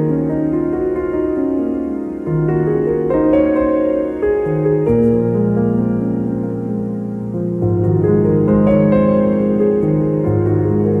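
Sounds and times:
calm solo piano music: 0.0 - 11.0.

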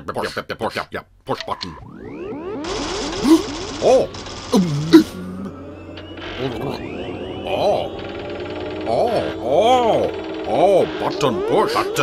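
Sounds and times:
mechanical whirring: 1.8 - 12.0
steady hum: 2.7 - 12.0.

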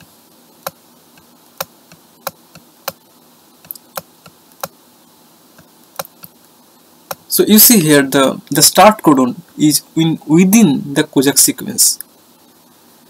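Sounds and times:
faint steady hiss: 0.0 - 13.0
input device clicks and taps: 5.6 - 6.3.

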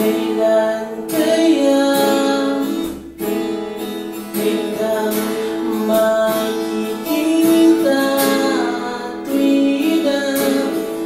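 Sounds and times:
man singing: 0.0 - 3.0, 4.2 - 11.0
acoustic guitar strumming: 0.0 - 11.0.

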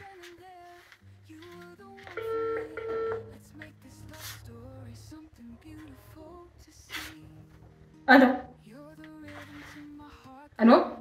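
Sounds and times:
soft background music: 0.0 - 11.0
mobile phone call beeps: 2.1 - 3.4.

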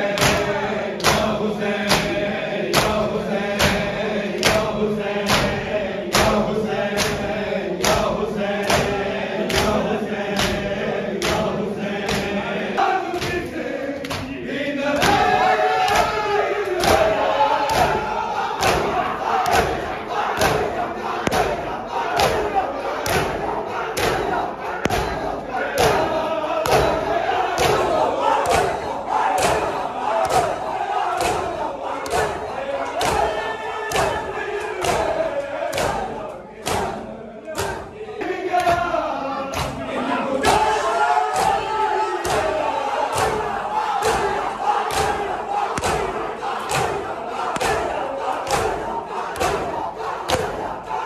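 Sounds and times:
men slapping bare chests: 0.0 - 12.5, 13.1 - 37.0, 37.6 - 37.9, 39.5 - 40.7, 41.3 - 51.0
men chanting together: 0.0 - 51.0.

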